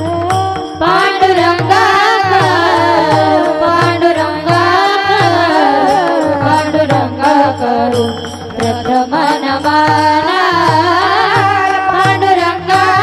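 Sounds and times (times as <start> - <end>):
hand drum beating: 0.0 - 13.0
person singing devotional song: 0.0 - 13.0.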